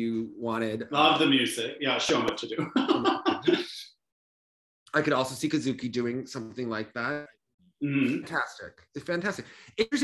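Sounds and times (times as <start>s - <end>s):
man laughing: 2.6s - 3.8s.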